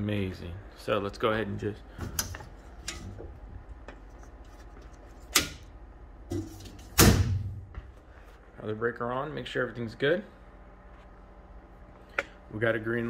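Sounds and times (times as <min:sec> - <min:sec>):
circuit breakers switching on: 0:05.2 - 0:05.8
heavy thud: 0:07.0 - 0:07.9.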